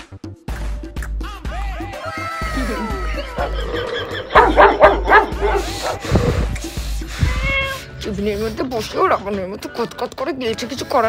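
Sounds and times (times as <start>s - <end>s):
background music: 0.0s - 11.0s
dog barking and yelping: 4.3s - 6.2s.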